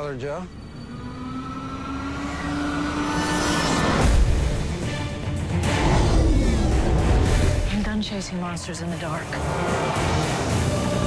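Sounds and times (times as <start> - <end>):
hissing swell: 0.0 - 8.4
low rising drone: 0.0 - 11.0.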